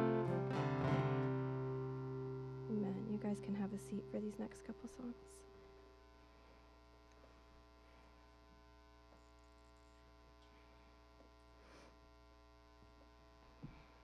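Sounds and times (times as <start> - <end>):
electrical mains hum: 0.0 - 14.0
faint tap: 13.6 - 13.9.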